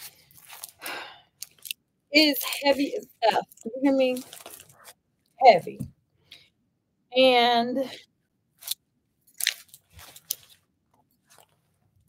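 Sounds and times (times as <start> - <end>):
nylon handbag rustling: 0.0 - 0.8, 2.2 - 4.9, 9.4 - 10.6.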